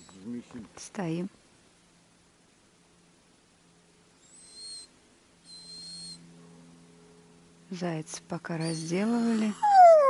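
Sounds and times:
dog howling: 9.5 - 10.0.

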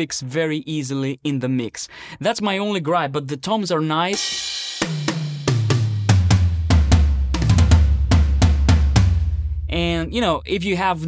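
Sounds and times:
tom drum hits: 4.8 - 10.2.

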